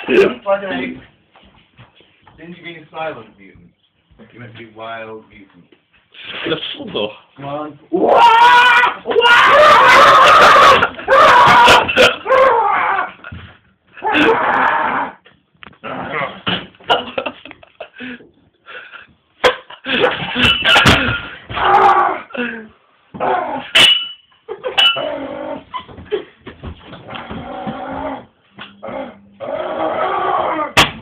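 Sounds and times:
person making animal-like cry: 7.9s - 13.2s, 14.0s - 15.2s.

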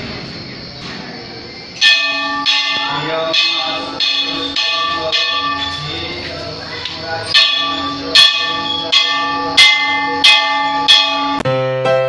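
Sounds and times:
brass bell ringing: 1.8s - 6.3s, 7.2s - 11.5s.

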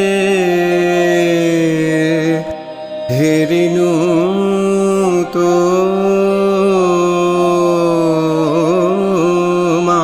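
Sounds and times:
instrumental accompaniment: 0.0s - 10.0s
man singing: 0.0s - 10.0s.

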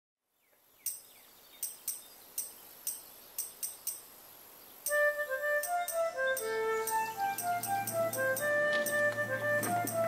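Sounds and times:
outdoor ambience: 0.2s - 10.0s
high-pitched chirps: 4.8s - 9.1s.

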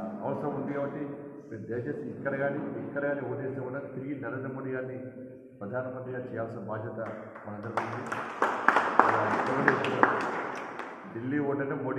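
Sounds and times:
group applauding: 7.4s - 11.2s.

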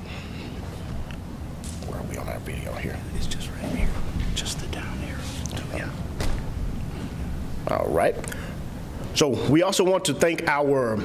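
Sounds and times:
men whispering: 1.8s - 6.2s.

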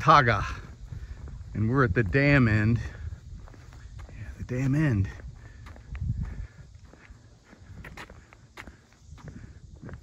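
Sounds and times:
footsteps on paved road: 0.0s - 10.0s.

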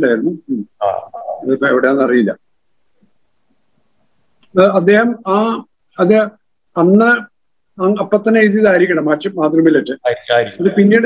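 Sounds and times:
man speaking: 0.0s - 2.4s, 4.5s - 11.0s.

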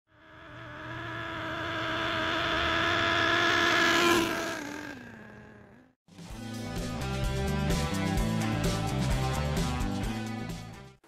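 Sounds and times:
toy truck engine buzzing at high revs: 0.1s - 6.0s.

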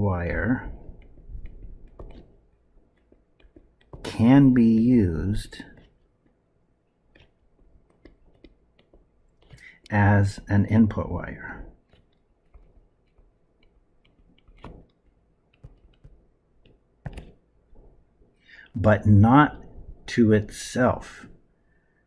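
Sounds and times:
stylus tapping on tablet screen: 0.4s - 9.9s, 11.7s - 18.0s.

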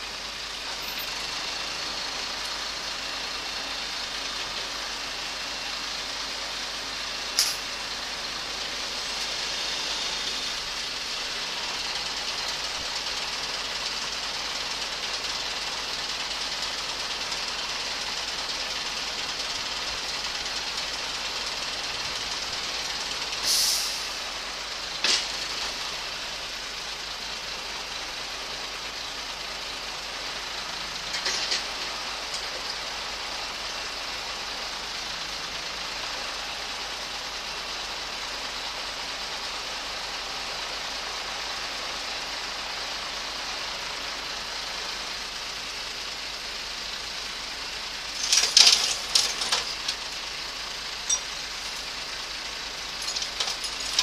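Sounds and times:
truck engine and hydraulics: 0.0s - 54.0s
burst of hiss: 23.4s - 24.3s.

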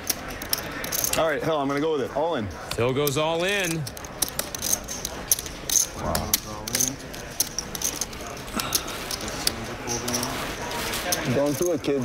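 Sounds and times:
poker chips clicking: 0.0s - 1.2s, 2.7s - 10.4s
faint low voices: 3.9s - 12.0s.

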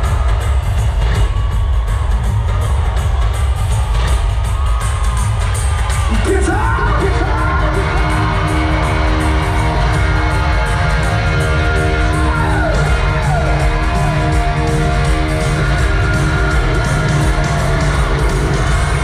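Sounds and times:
crowd cheering and yelling: 0.0s - 19.0s
live rock band playing loud: 0.0s - 19.0s.

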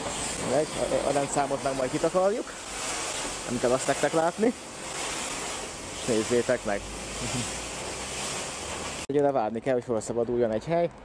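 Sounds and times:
high-pressure water spray hiss: 0.0s - 9.1s.

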